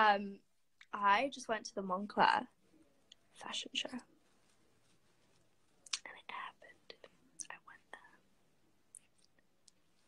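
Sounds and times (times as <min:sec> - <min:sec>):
girl whispering: 0:03.4 - 0:04.1, 0:05.9 - 0:08.2.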